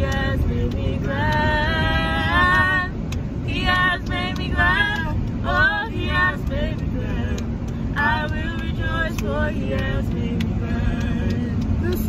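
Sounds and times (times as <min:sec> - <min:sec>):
person singing gospel runs: 0:06.5 - 0:12.0.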